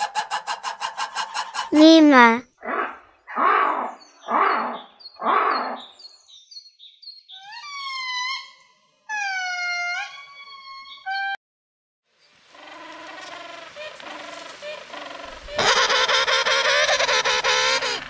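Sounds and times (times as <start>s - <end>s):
lemur rough calls: 12.6s - 18.0s
lemur wavering pitched cries: 15.6s - 18.0s.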